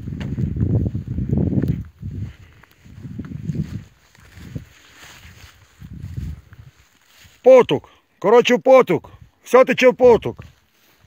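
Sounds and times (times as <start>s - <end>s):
wind rumbling on microphone: 0.0s - 7.4s.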